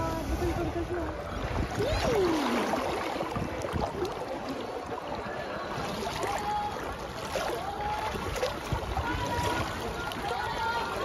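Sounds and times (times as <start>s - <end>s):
water splashing from swimming strokes: 0.1s - 11.0s.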